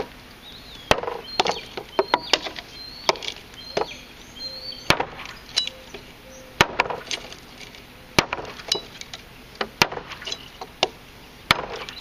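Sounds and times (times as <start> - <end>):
knife chopping wood: 0.9 - 3.9, 4.9 - 5.3, 6.6 - 7.4, 8.2 - 8.9, 9.6 - 12.0.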